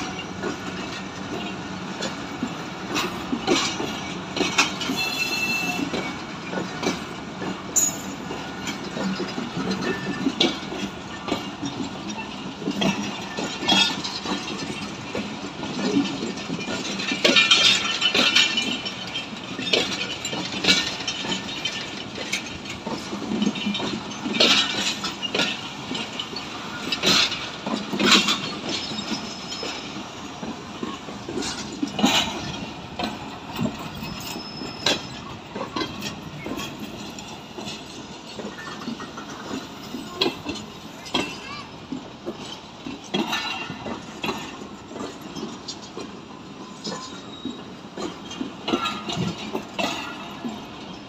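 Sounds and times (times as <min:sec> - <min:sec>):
steady train rumble: 0:00.0 - 0:51.0
train wheels clacking over rail joints: 0:00.0 - 0:51.0
high wheel squeals: 0:04.8 - 0:06.2, 0:33.6 - 0:35.4.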